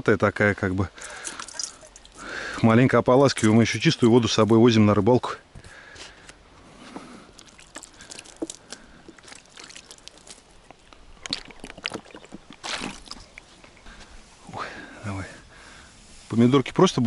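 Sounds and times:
water trickling onto ground: 0:00.8 - 0:02.5, 0:07.2 - 0:14.0
water poured over plastic plate: 0:01.0 - 0:02.3, 0:07.4 - 0:10.5, 0:11.2 - 0:13.2.

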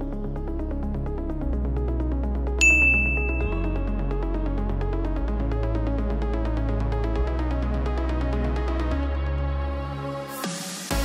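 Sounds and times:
electronic backing music: 0:00.0 - 0:11.0
bell-like ding: 0:02.6 - 0:03.9.

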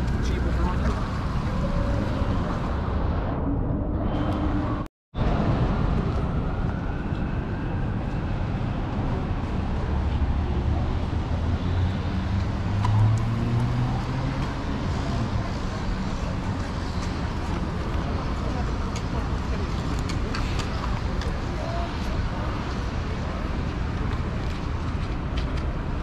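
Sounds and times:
traffic rumble: 0:00.0 - 0:26.0.

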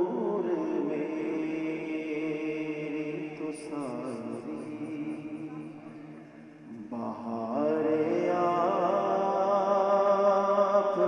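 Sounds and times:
man singing into a microphone: 0:00.0 - 0:11.0.

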